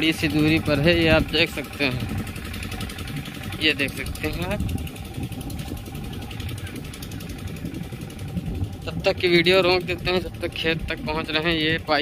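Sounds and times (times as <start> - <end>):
pump engine running: 0.0 - 12.0.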